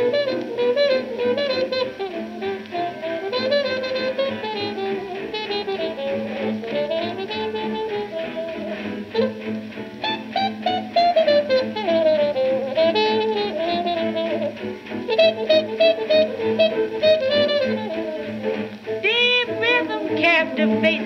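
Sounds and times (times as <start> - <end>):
swing band on old record: 0.0 - 21.0.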